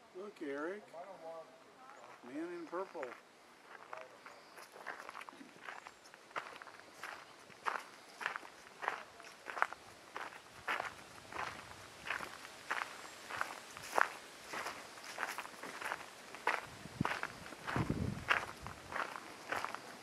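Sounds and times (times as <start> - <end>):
footsteps on gravel: 1.9 - 20.0.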